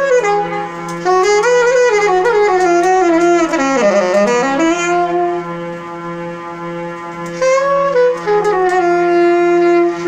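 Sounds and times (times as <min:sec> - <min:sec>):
saxophone playing long tone: 0:00.0 - 0:10.0.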